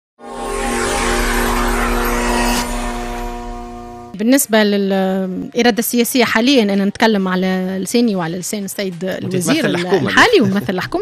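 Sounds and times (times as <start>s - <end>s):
held synth chord: 0.2s - 4.2s.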